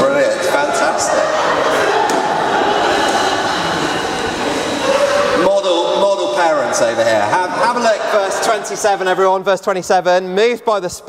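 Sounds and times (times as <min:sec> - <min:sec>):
murmur of many voices: 0:00.0 - 0:11.0.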